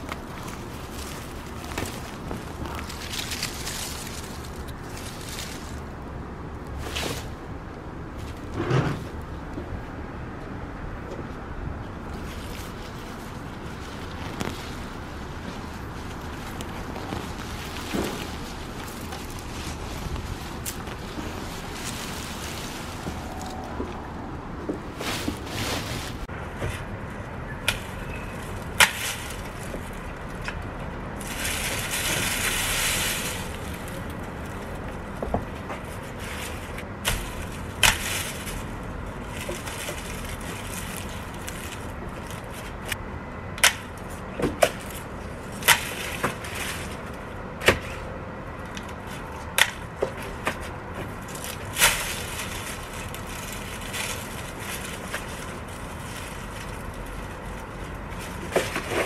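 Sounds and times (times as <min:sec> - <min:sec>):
rustle of foliage: 0:00.0 - 0:09.4, 0:11.9 - 0:59.0.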